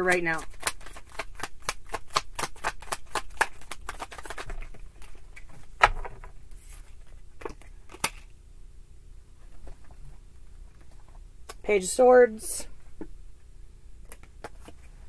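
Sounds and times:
cards being shuffled: 0.0s - 8.3s, 14.0s - 15.0s.

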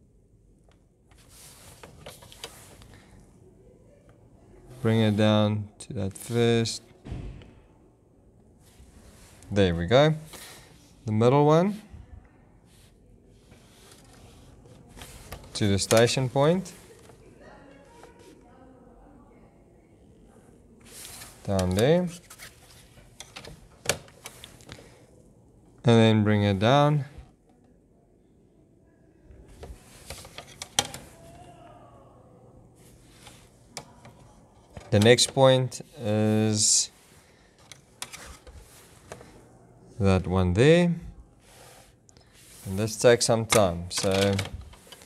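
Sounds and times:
plastic set square sliding: 13.4s - 17.2s, 32.8s - 39.4s, 41.4s - 45.0s.

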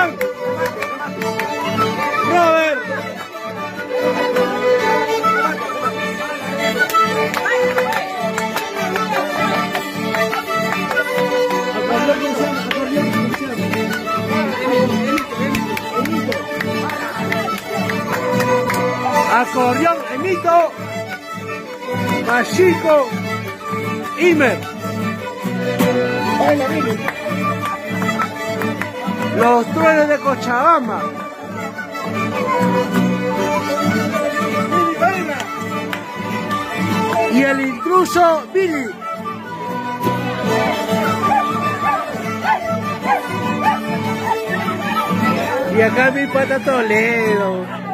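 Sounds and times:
folk band playing: 0.0s - 47.9s
mandolin: 0.0s - 47.9s
strummed guitars: 0.0s - 47.9s
violin melody: 0.0s - 47.9s.

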